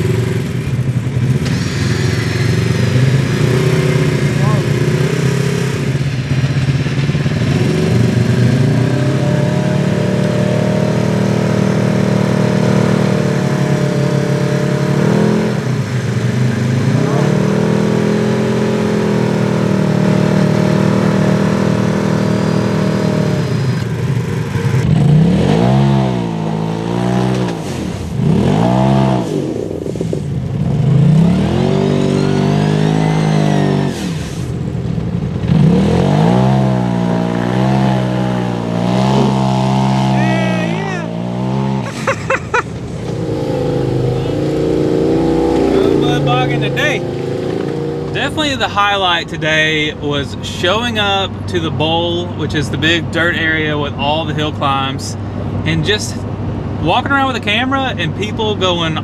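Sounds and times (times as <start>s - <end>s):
off-road vehicle engine revving: 0.0s - 59.0s.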